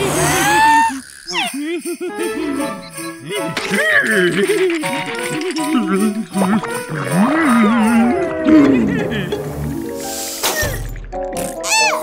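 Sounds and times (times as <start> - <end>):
cartoon character vocalizations: 0.0 - 4.6, 11.5 - 12.0
jingling-bell music: 1.3 - 8.4.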